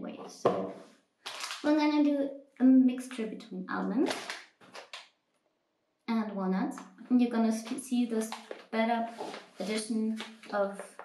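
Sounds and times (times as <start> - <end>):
plastic packet crinkling: 1.3 - 1.7, 4.0 - 5.1, 8.1 - 11.0.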